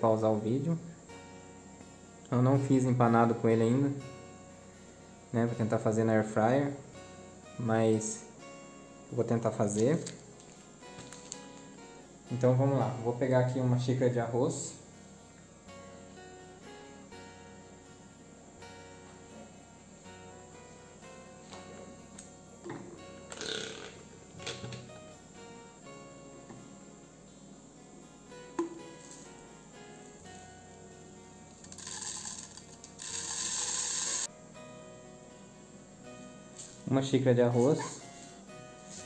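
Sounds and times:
soft guitar music: 0.0s - 39.0s
rice poured into plastic jar: 31.6s - 34.3s.

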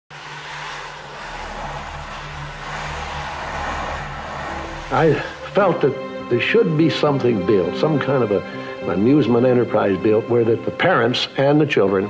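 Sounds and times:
steady hiss: 0.1s - 5.9s
low wavering hum: 0.2s - 6.4s.

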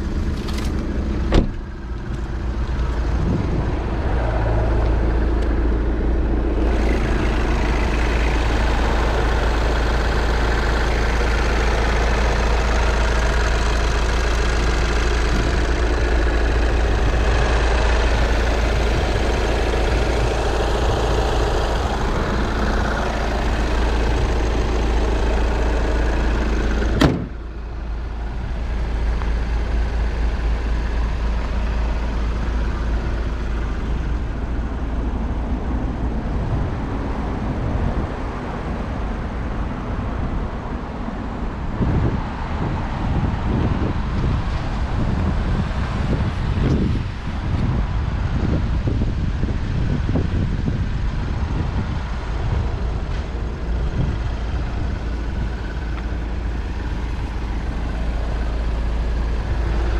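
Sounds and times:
car engine idling: 0.0s - 59.9s
car door shutting: 0.3s - 2.2s, 26.8s - 27.4s
car hood slamming: 1.3s - 1.6s, 26.9s - 27.4s.

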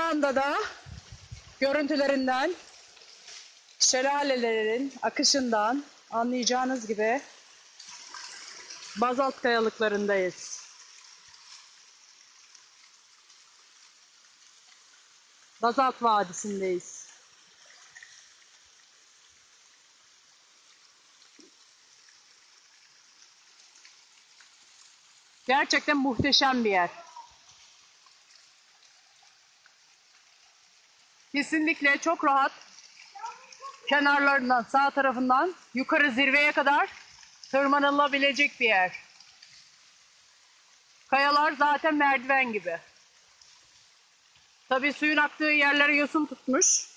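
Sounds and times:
faint rush of waterfall: 0.0s - 46.9s
small waterfall rushing: 31.3s - 36.9s.

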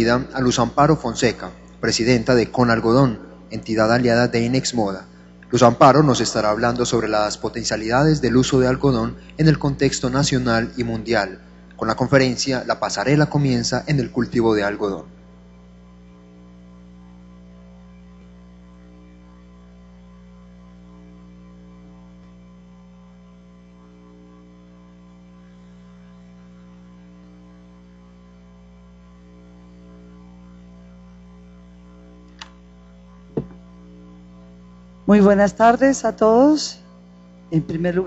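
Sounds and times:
microphone electrical hum: 0.0s - 38.0s
microphone knocks: 33.3s - 33.6s.

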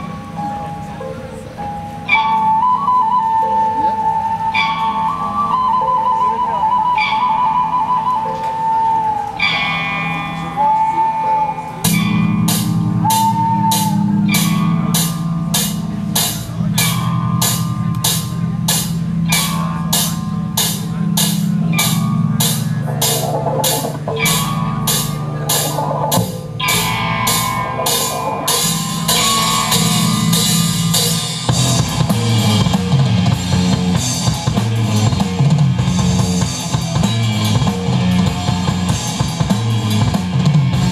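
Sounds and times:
high piping melody: 0.0s - 40.9s
rock band drums and full band: 11.8s - 40.9s.

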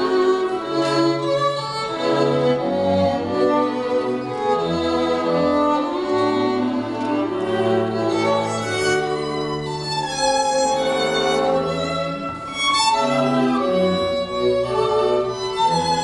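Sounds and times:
string quartet playing tango: 0.0s - 16.0s.

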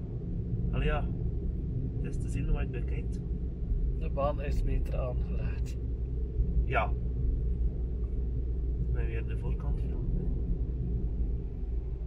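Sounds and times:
car interior rumble while driving: 0.0s - 12.0s.

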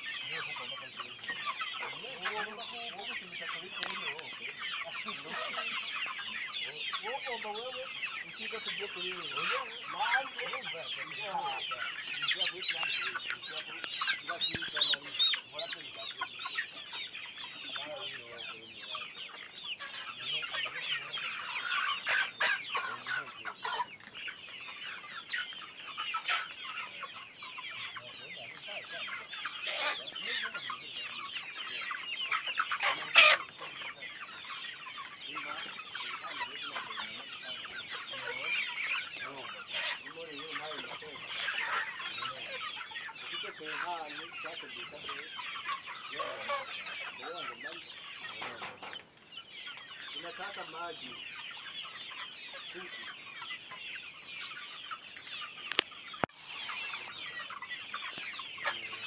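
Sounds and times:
flock of chickens clucking: 0.0s - 59.0s.

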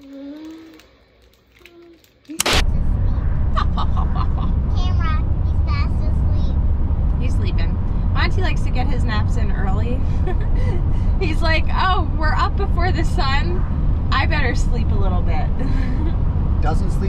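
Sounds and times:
soft voices: 0.0s - 1.0s
sharp click: 2.4s - 2.7s
car cabin rumble: 2.5s - 17.0s.

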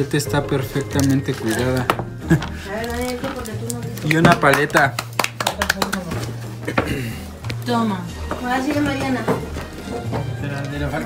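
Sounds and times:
plastic packaging clicks and taps: 1.0s - 6.9s.

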